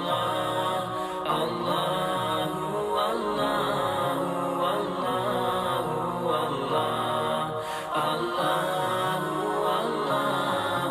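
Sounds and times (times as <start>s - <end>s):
layered voices chanting: 0.0s - 10.9s.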